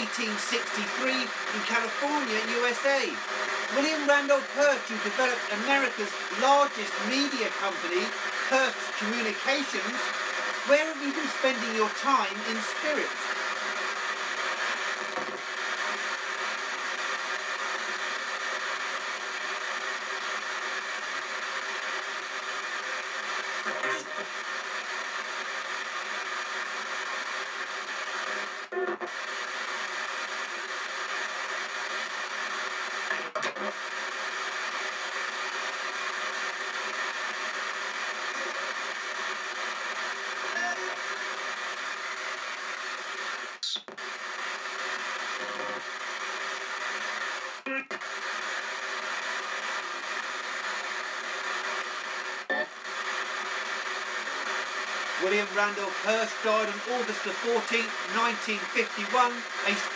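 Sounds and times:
chopped radio voices: 0:00.0 - 0:21.0, 0:37.3 - 0:59.9
radio static: 0:00.0 - 0:59.9.

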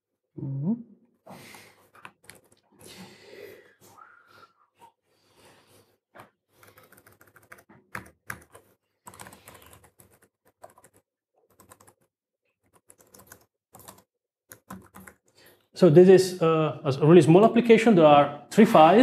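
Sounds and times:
laptop keyboard typing: 0:02.0 - 0:02.6, 0:06.5 - 0:15.4.

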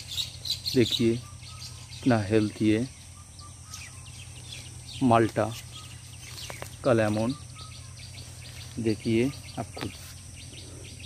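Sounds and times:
faint bird chirps: 0:00.0 - 0:11.0
steady low hum: 0:00.0 - 0:11.0.

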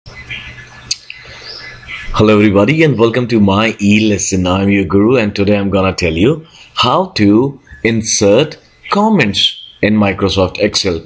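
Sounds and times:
bird chirps: 0:00.1 - 0:04.6, 0:07.5 - 0:10.2
low steady hum: 0:00.1 - 0:11.0.

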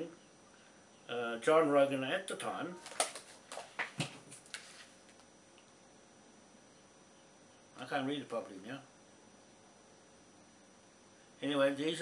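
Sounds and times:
paper pages rustling: 0:02.8 - 0:05.2.

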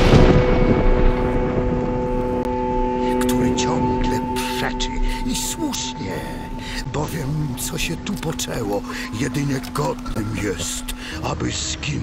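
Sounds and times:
higher tone: 0:00.0 - 0:11.4
held drone chord: 0:00.0 - 0:12.0.

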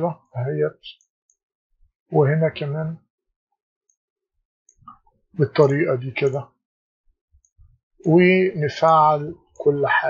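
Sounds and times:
man speaking: 0:00.0 - 0:01.0, 0:02.1 - 0:03.0, 0:05.4 - 0:06.5, 0:08.1 - 0:10.0.

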